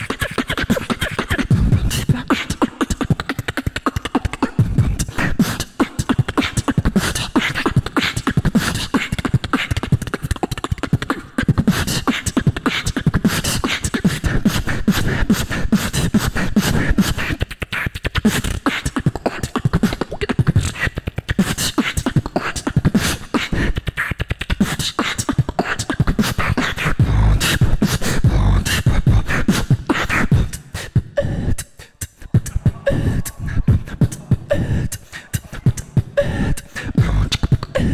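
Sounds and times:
person beatboxing into microphone: 0.0 - 37.9.

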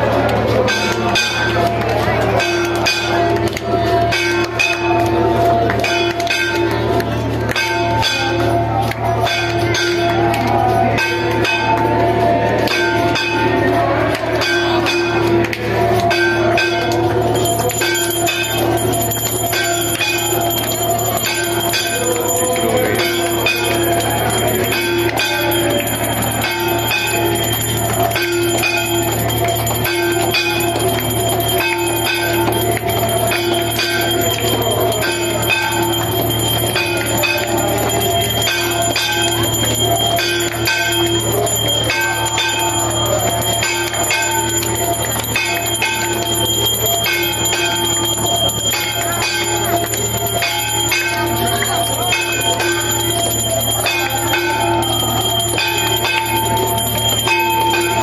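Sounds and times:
bells ringing rhythmically: 0.0 - 58.0.

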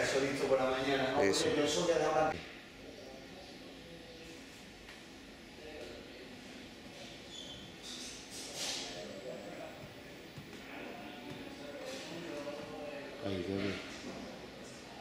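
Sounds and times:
background voices murmuring: 2.3 - 15.0.

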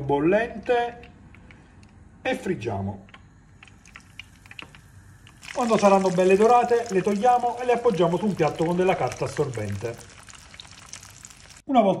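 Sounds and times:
oil crackling in frying pan: 3.7 - 11.7.

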